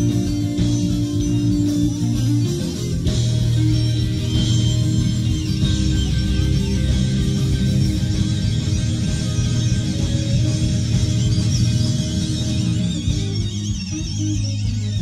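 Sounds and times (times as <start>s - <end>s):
electric guitar: 0.0s - 15.0s
sustained low bass notes: 0.0s - 15.0s.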